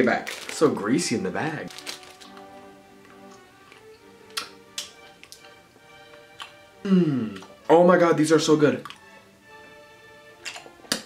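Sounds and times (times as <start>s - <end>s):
music with held tones: 0.0s - 11.0s.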